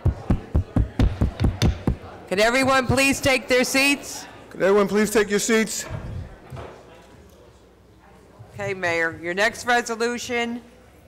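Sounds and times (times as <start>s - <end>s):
wooden gavel rapping: 0.0s - 2.0s.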